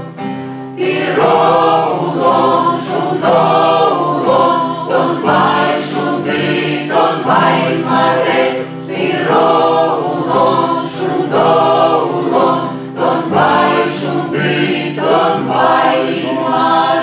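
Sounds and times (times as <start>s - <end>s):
acoustic guitar accompaniment: 0.0s - 17.0s
mixed choir singing folk song: 0.0s - 17.0s.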